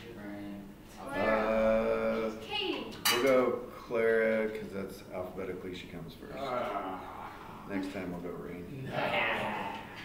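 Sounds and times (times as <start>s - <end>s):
person speaking: 1.0s - 3.4s.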